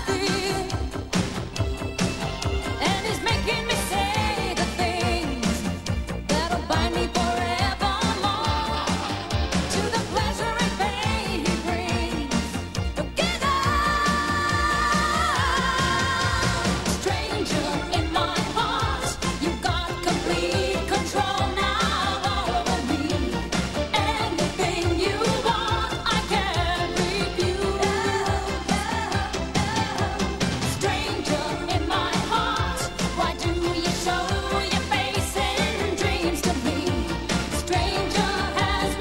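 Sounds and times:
woman singing pop song: 0.0s - 1.4s, 2.6s - 39.0s
dance beat: 0.0s - 39.0s.

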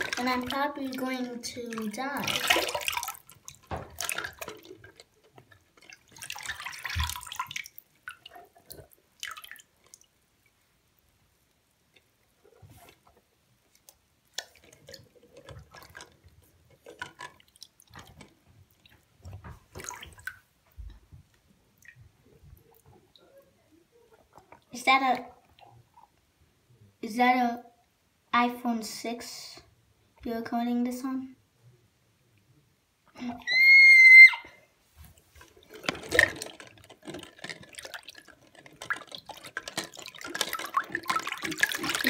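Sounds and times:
water splashing in sink: 0.0s - 10.1s, 14.3s - 21.0s, 35.0s - 42.0s.

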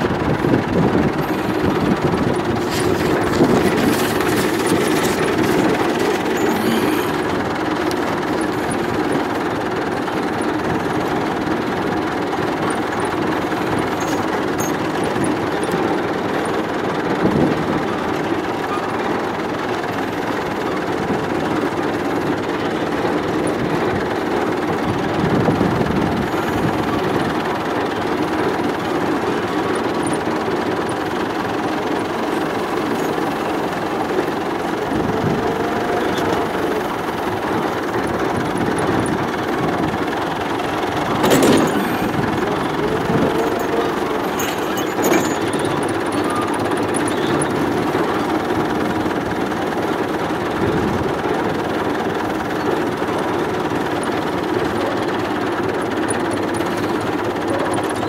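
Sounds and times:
tractor engine running: 0.0s - 58.0s.

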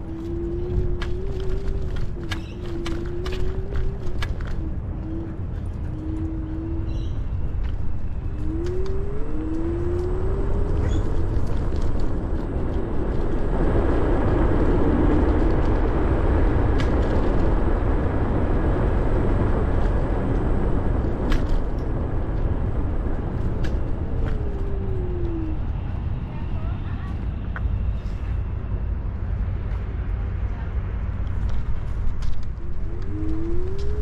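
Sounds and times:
wind buffeting: 0.0s - 34.0s.

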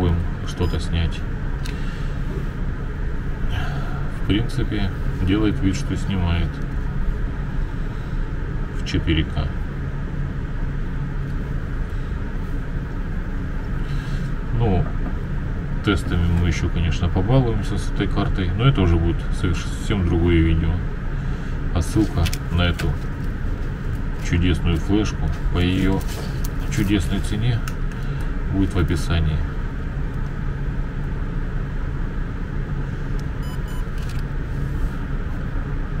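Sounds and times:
faint hum: 0.0s - 36.0s
low background rumble: 0.0s - 36.0s.

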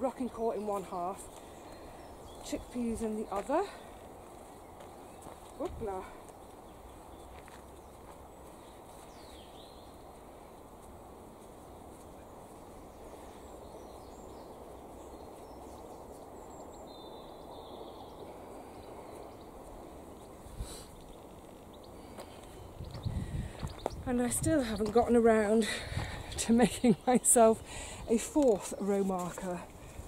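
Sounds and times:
outdoor background noise: 0.0s - 30.0s.

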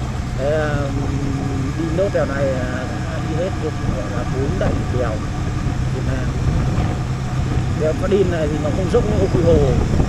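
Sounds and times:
motorcycle engine drone: 0.0s - 10.0s.

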